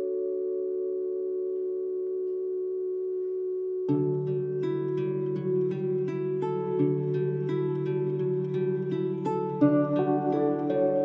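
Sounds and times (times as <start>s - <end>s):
soft held chords: 0.0s - 11.0s
plucked notes: 3.9s - 11.0s.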